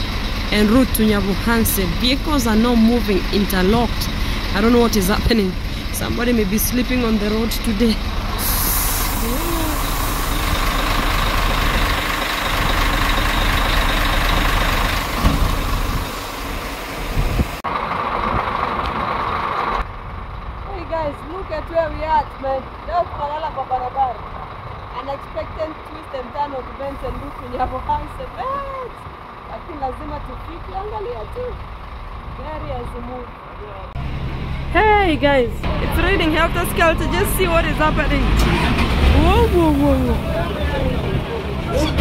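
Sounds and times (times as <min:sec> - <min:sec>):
trucks and buses idling: 0:00.0 - 0:42.0
people chattering: 0:34.8 - 0:42.0.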